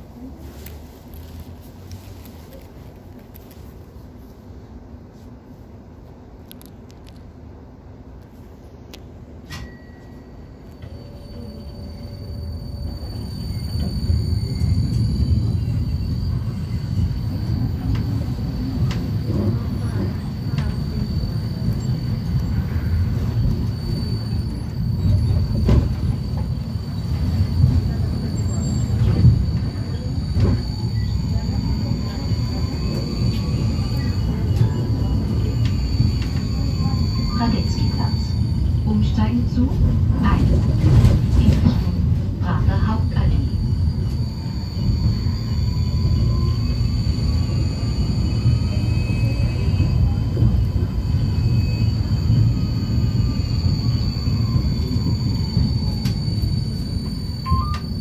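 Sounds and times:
tram wheels rumbling on rails: 0.0s - 58.0s
faint high whine: 9.4s - 39.7s, 41.6s - 58.0s.

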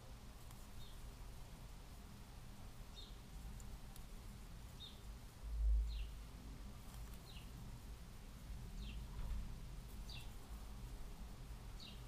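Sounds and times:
bird chirping faintly: 0.0s - 1.8s, 2.6s - 12.0s.

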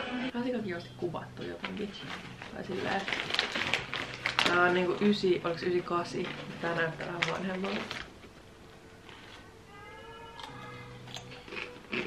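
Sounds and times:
cat meowing: 9.7s - 11.0s.

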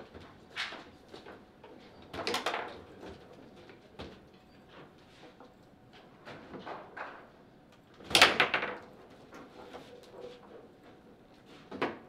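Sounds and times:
foosball ball clattering: 8.1s - 8.9s.

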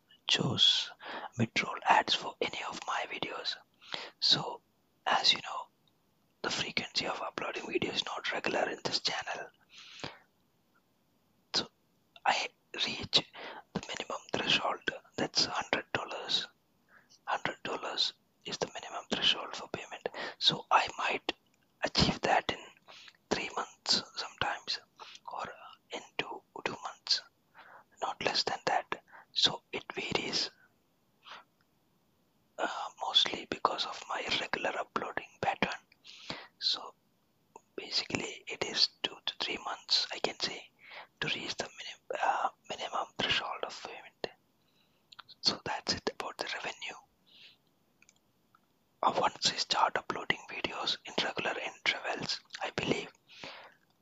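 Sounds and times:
close whispered speech: 0.0s - 5.7s, 6.4s - 10.3s, 11.5s - 31.5s, 32.6s - 37.0s, 37.6s - 44.4s, 45.1s - 48.2s, 49.0s - 54.0s.

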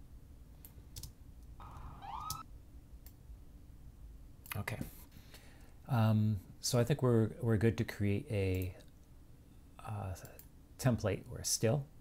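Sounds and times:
police siren whoop: 1.6s - 2.4s.

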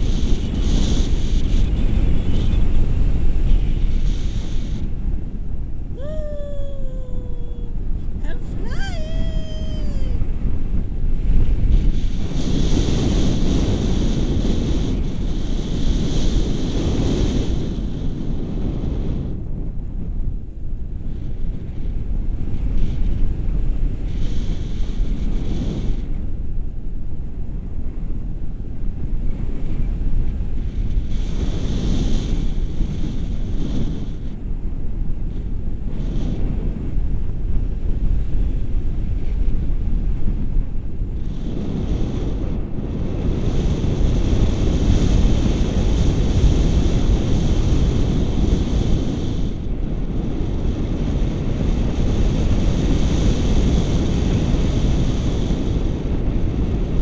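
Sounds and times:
wind rushing over microphone: 0.0s - 57.0s.

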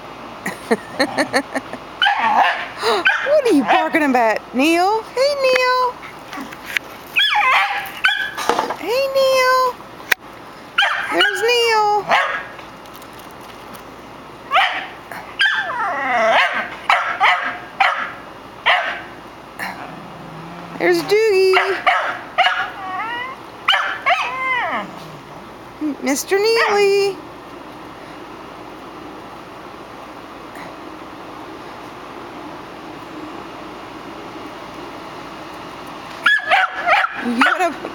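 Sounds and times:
dog barking and yipping: 2.0s - 4.0s, 7.2s - 8.4s, 10.8s - 11.4s, 12.0s - 12.6s, 14.5s - 19.2s, 21.5s - 24.9s, 36.2s - 37.6s
small dog yips and whines: 7.2s - 8.4s, 15.4s - 16.7s, 21.9s - 25.0s.

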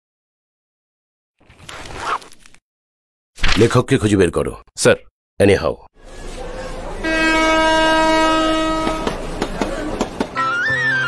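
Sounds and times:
newspaper rustling and sliding: 1.4s - 2.6s, 3.4s - 3.7s.

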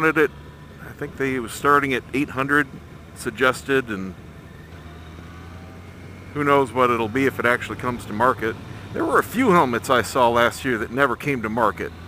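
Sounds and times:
motorcycle engine drone: 0.0s - 12.0s
road noise: 0.0s - 12.0s.

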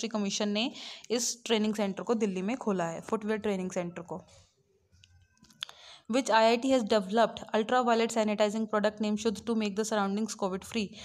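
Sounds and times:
woman speaking: 0.0s - 4.3s, 6.1s - 11.0s.

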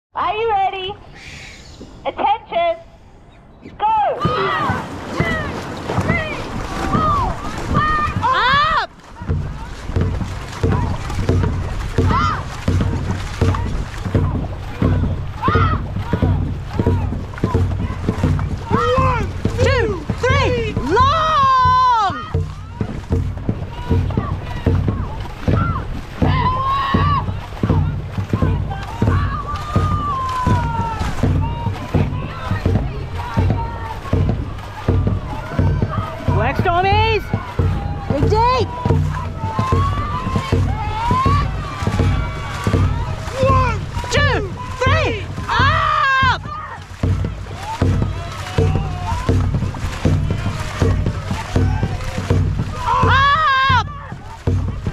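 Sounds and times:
paddles splashing through water: 0.2s - 54.9s
water rushing along hull: 0.2s - 54.9s
person shouting: 18.7s - 22.4s, 42.9s - 46.8s, 52.8s - 54.1s.

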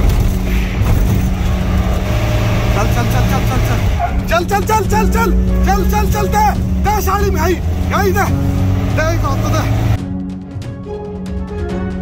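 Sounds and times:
road noise: 0.0s - 10.1s
vehicle engine rumble: 0.0s - 10.4s.

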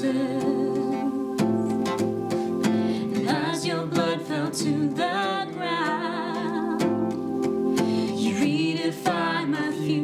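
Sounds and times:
woman singing: 0.0s - 1.9s, 2.9s - 10.0s
strummed acoustic guitar: 0.0s - 9.8s.

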